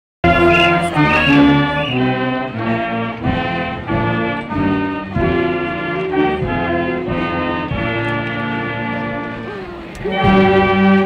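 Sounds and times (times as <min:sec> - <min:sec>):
brass band playing: 0:00.2 - 0:11.0.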